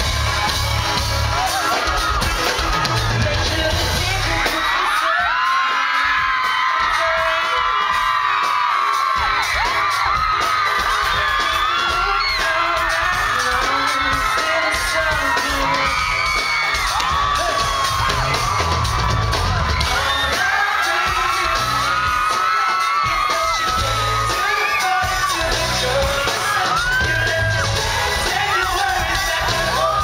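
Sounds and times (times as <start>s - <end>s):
fans screaming and whooping: 0.0s - 30.0s
live pop band: 0.0s - 30.0s.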